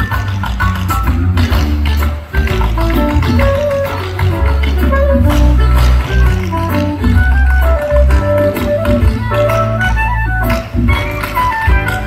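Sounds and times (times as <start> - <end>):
live band music over pa: 0.0 - 12.0.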